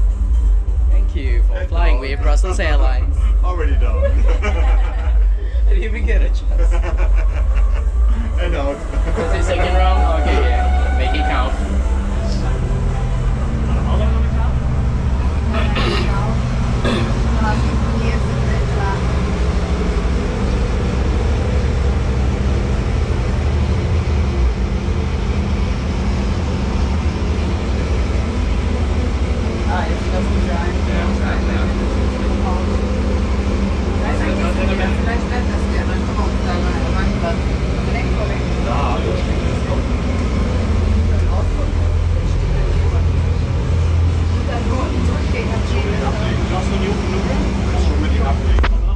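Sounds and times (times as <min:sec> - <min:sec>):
faint indistinct voices: 0:00.0 - 0:48.9
low mechanical hum and rumble: 0:00.0 - 0:48.9.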